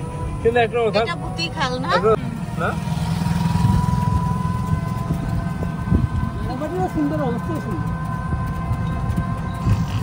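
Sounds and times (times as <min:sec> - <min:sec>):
motor and road rumble: 0:00.0 - 0:10.0.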